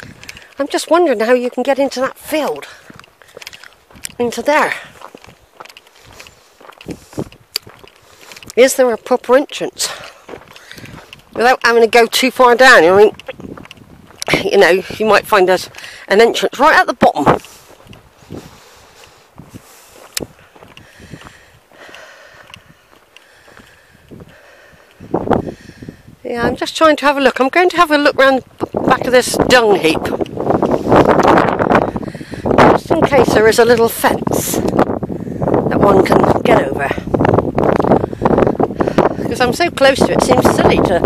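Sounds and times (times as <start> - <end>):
footsteps on stony dirt: 0.0 - 41.0.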